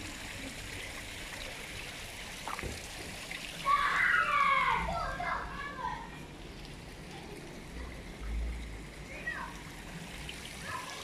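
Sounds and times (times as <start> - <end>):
running water hiss: 0.0 - 11.0.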